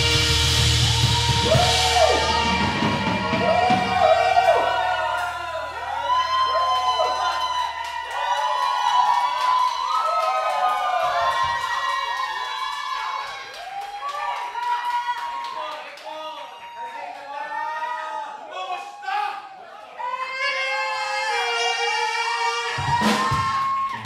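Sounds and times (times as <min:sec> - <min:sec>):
low steady stage tone: 0:00.0 - 0:09.9
audience cheering and clapping: 0:00.0 - 0:19.3, 0:19.9 - 0:24.0.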